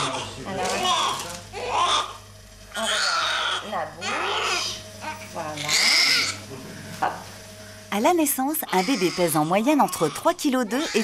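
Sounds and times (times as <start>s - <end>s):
newborn baby crying: 0.0s - 6.4s, 8.6s - 11.0s.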